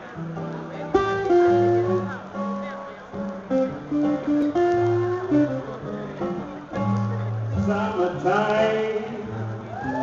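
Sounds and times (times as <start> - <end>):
acoustic guitar picking melody: 0.0 - 10.0.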